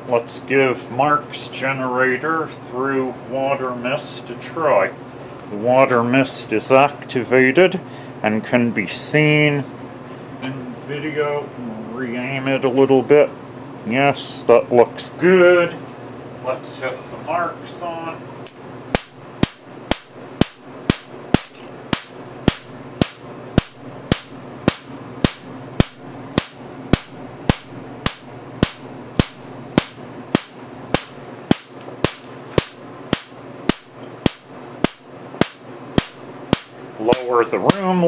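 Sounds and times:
steady low hum: 0.0 - 38.0
electric sparks cracking: 19.0 - 37.9.

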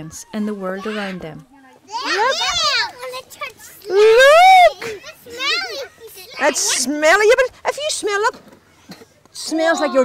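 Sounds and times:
faint children's voices: 0.0 - 10.0
young child exclaiming: 1.9 - 6.7.

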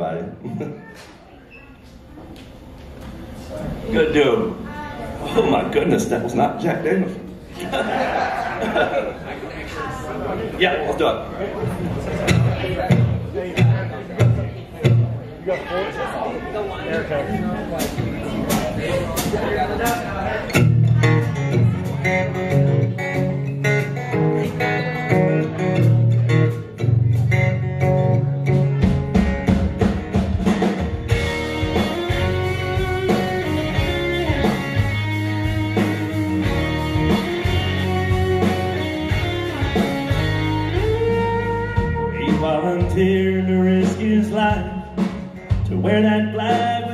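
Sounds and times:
bass: 11.1 - 15.4, 17.8 - 46.9
electric guitars: 11.6 - 15.2, 17.3 - 46.9
acoustic guitar: 11.6 - 16.0, 16.9 - 46.9.

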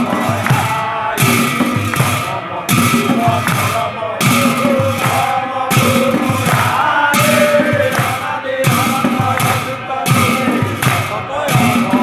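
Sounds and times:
men chanting: 0.0 - 12.0.

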